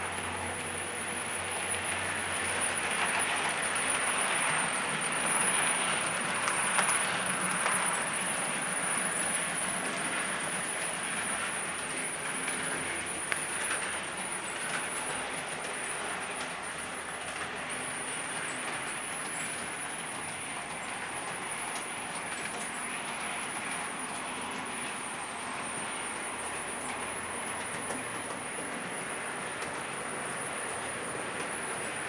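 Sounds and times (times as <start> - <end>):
model train rolling on track: 0.0 - 32.0.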